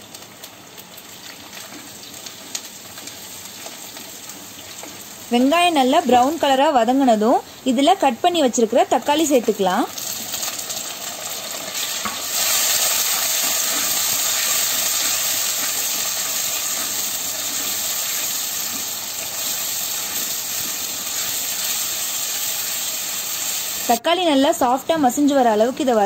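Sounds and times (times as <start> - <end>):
vegetables sizzling in oil: 0.0 - 26.0.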